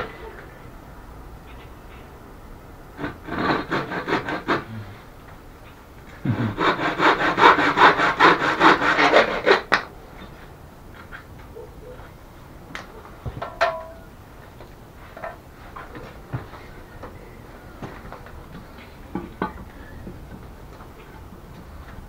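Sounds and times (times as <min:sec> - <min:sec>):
handsaw cutting wood: 0:03.0 - 0:04.8, 0:06.2 - 0:09.7.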